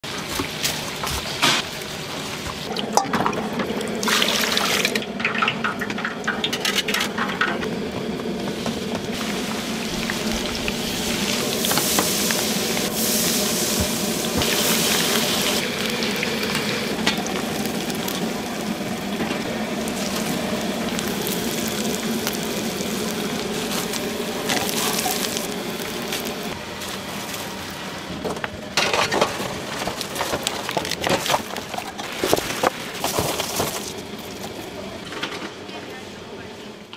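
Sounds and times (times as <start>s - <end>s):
oil sizzling in deep fryer: 0.0s - 28.1s.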